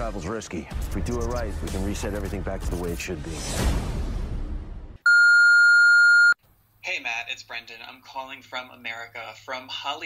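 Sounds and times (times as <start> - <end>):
trailer sound effects: 1.5 - 5.0
long electronic beep: 5.1 - 6.4.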